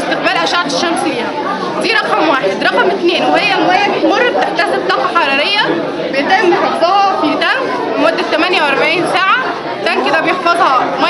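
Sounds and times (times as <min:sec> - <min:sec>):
indoor crowd chatter: 0:00.0 - 0:11.0
woman speaking: 0:00.0 - 0:11.0.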